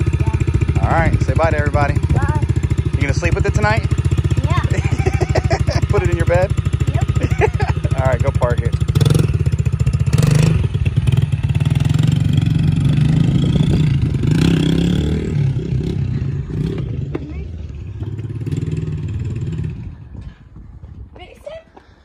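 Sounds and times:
small motorbike engine running: 0.0 - 18.4.

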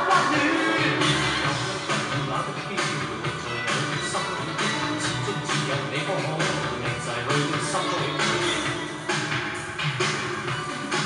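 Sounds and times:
pop dance song: 0.0 - 11.0.

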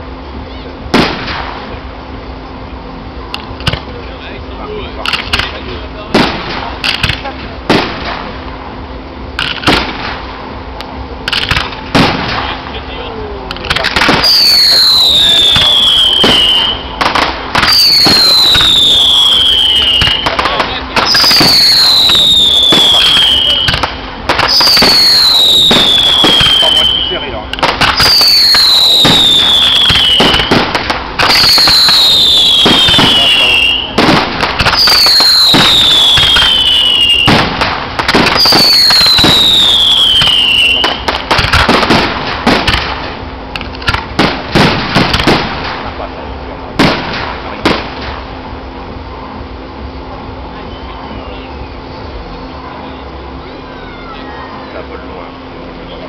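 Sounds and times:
fireworks bangs and crackling: 0.8 - 48.6
falling firework whistle: 13.9 - 43.0, 50.6 - 51.8.

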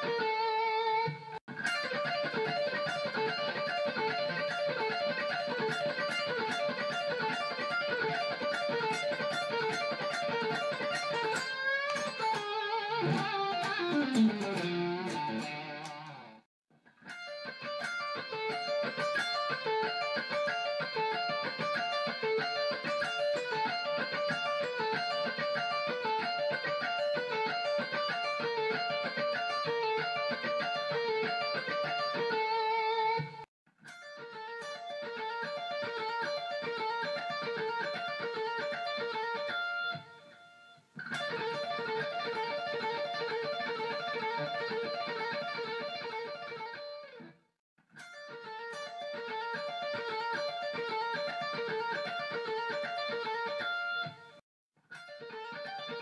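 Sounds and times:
electric guitar legato licks: 0.0 - 56.0.

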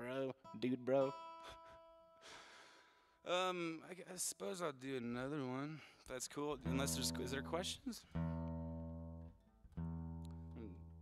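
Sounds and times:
acoustic guitar chord strummed: 6.6 - 11.0.

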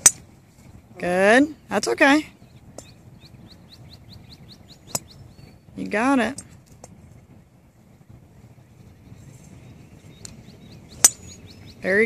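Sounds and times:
golf club striking ball: 0.0 - 0.3, 4.9 - 5.2, 11.0 - 11.5
faint bird chirps: 1.5 - 5.8.

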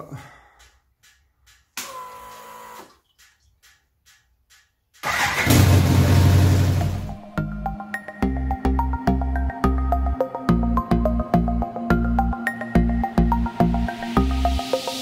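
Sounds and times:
motorcycle engine starting and running: 5.0 - 7.2
music with steady beat: 6.7 - 15.0.

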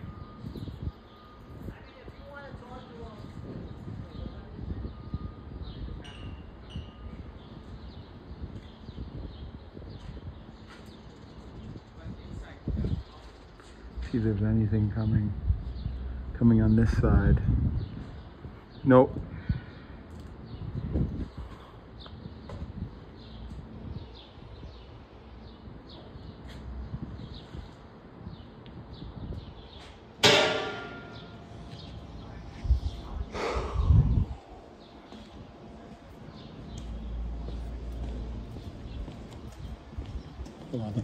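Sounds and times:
outdoor background noise: 0.0 - 41.0
ringing metal clang: 6.0 - 7.2, 30.2 - 31.5.

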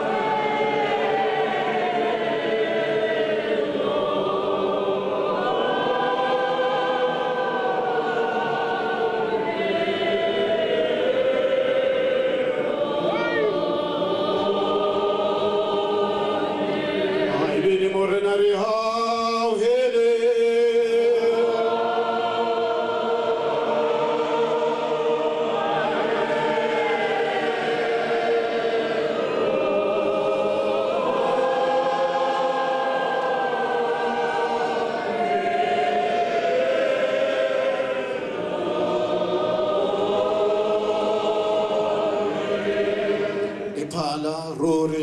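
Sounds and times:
choir singing slow hymn: 0.0 - 45.0.

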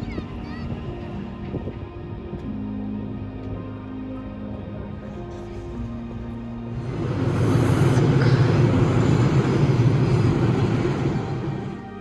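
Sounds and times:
train rumbling on viaduct: 5.1 - 12.0.

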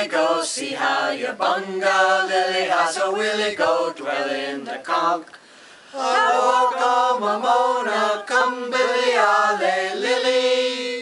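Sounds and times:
group singing a cappella: 0.0 - 11.0.

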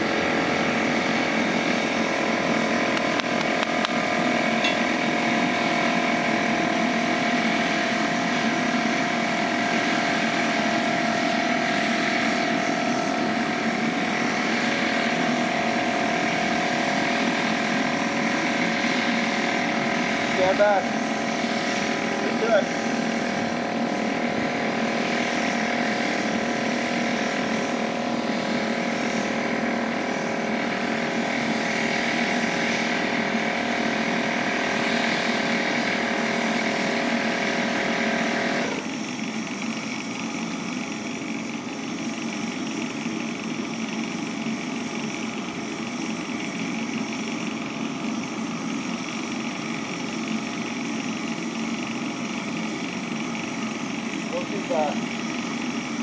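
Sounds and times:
furnace burner roaring: 0.0 - 56.0
steady whine: 0.0 - 56.0.

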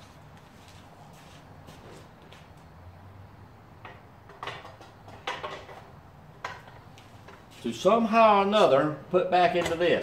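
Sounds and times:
objects knocking and rustling: 3.8 - 7.6.

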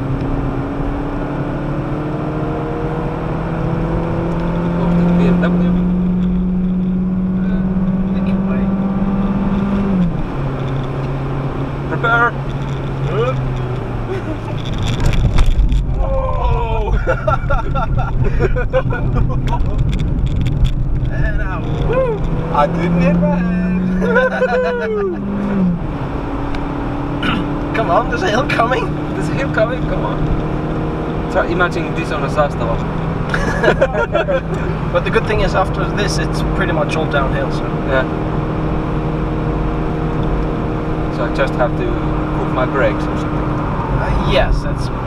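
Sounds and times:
car engine accelerating: 0.0 - 45.0
road rumble: 0.0 - 45.0.

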